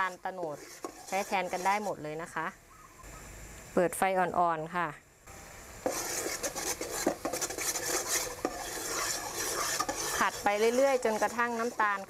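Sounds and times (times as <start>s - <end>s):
metal spoon scraping a pot: 0.0s - 2.0s, 5.8s - 12.0s
sugar sizzling: 0.0s - 2.6s, 5.3s - 12.0s.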